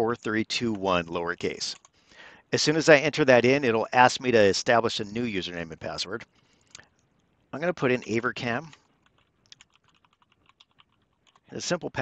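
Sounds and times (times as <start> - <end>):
faint computer keyboard keystrokes: 8.6 - 11.5.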